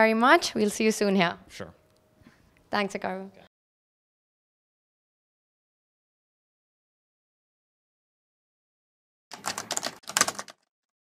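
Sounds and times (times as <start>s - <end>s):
fast clicking like typing: 9.3s - 10.7s.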